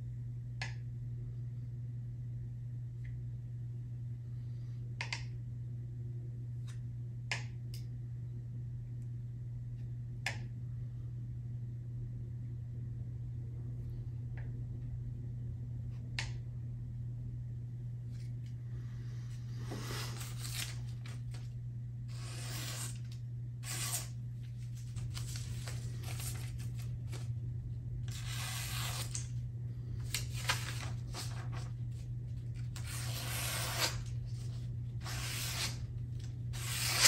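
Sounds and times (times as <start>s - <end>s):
low hum: 0.0s - 37.0s
knife slicing paper: 19.6s - 21.4s, 22.1s - 24.2s, 24.8s - 27.3s, 28.1s - 29.3s, 30.0s - 31.7s, 32.8s - 35.9s, 36.5s - 37.0s
paper rustling: 24.4s - 27.3s, 30.0s - 33.0s.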